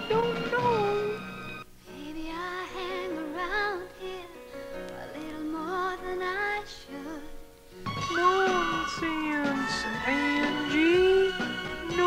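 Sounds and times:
faint backing music: 0:00.0 - 0:12.0
high voice singing sliding notes: 0:08.0 - 0:12.0.

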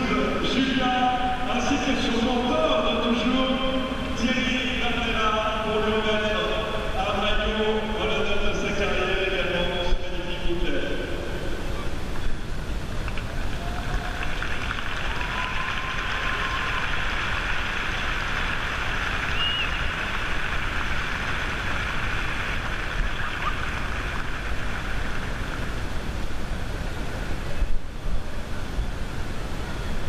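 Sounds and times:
spectators applauding: 0:13.0 - 0:25.6.

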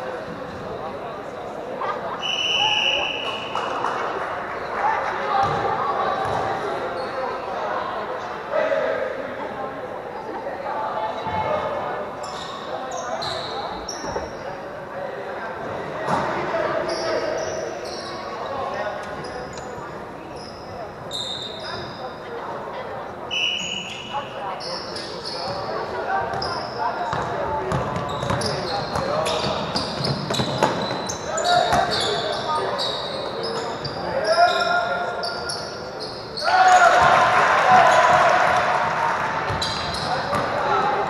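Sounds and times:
sneakers squeaking on gym floor: 0:12.2 - 0:14.5, 0:16.1 - 0:22.2, 0:23.3 - 0:37.1, 0:39.5 - 0:41.0
players shouting: 0:36.4 - 0:41.0
basketball bouncing: 0:39.5 - 0:40.6.

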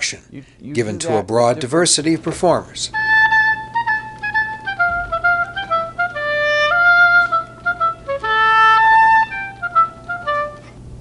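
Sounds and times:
solo oboe: 0:03.0 - 0:10.8.

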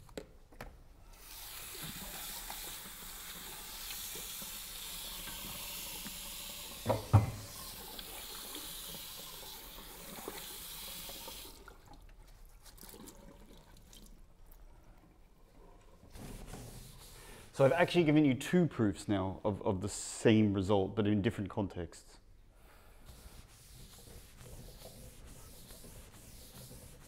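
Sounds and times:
tap water running into sink: 0:01.2 - 0:12.1
knocks: 0:06.9 - 0:07.4.

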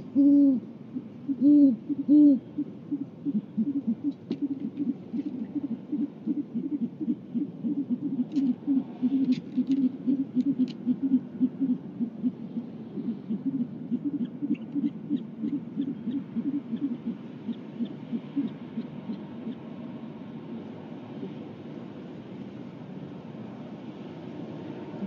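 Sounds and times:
owl hooting: 0:00.0 - 0:20.0.

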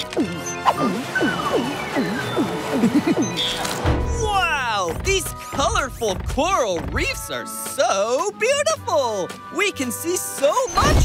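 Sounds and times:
cartoon gulping pitch swoops: 0:00.0 - 0:03.6
background music: 0:00.0 - 0:11.0.

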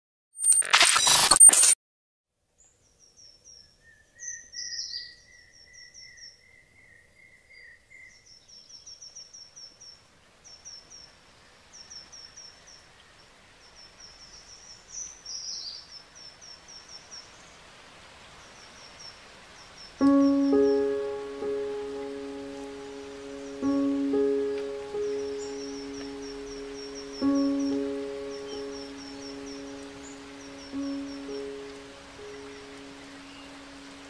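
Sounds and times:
faint steady hiss: 0:02.4 - 0:34.0
forest birds chirping: 0:02.4 - 0:34.0.

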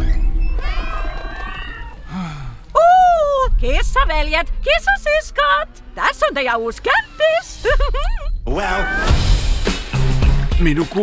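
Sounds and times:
many cats meowing: 0:00.6 - 0:02.1
background music: 0:02.1 - 0:11.0.

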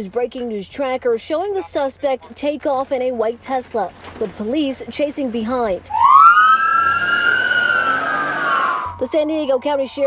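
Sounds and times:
police siren wailing: 0:05.9 - 0:10.0.

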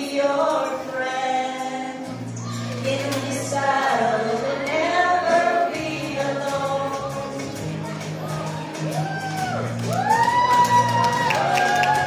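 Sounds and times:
group of people singing: 0:00.0 - 0:08.4.

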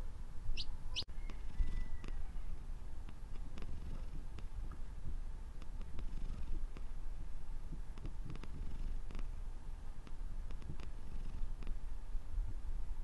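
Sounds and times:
cat purring: 0:03.3 - 0:04.5, 0:05.6 - 0:06.9, 0:08.0 - 0:09.3, 0:10.5 - 0:11.9.

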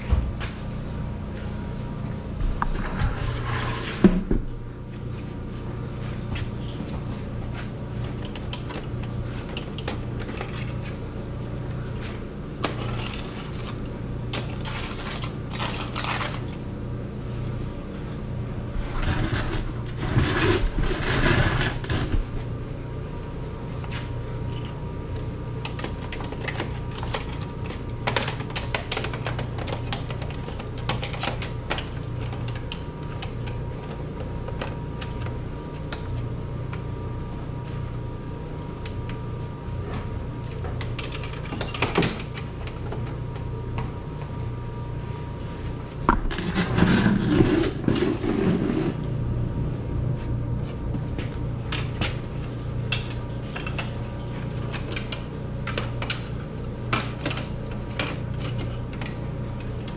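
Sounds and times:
steady low hum: 0:00.0 - 0:59.9
metal scraping and rattling: 0:18.7 - 0:22.3.

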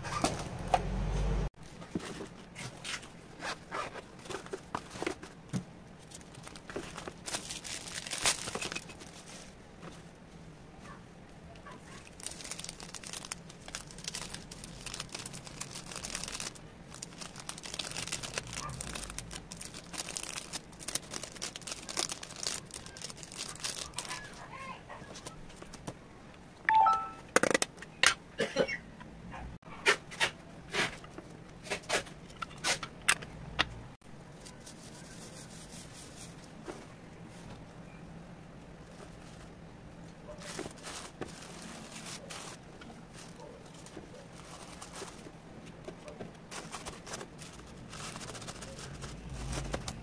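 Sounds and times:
plastic wrapping crinkling: 0:06.0 - 0:09.6, 0:11.6 - 0:24.5, 0:40.3 - 0:45.4, 0:46.4 - 0:50.0
tissue paper rustling: 0:06.0 - 0:09.6, 0:11.9 - 0:24.4, 0:34.4 - 0:36.5, 0:40.4 - 0:45.3, 0:46.5 - 0:50.0.

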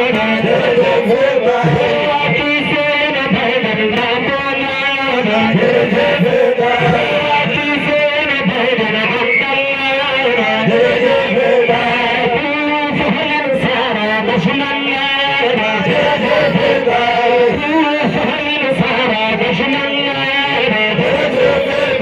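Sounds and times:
man chanting into microphone: 0:00.0 - 0:03.0, 0:04.6 - 0:22.0.

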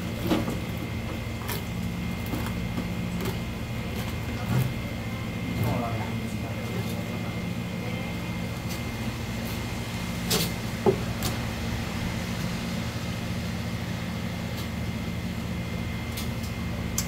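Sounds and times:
low machine hum: 0:00.0 - 0:17.0.

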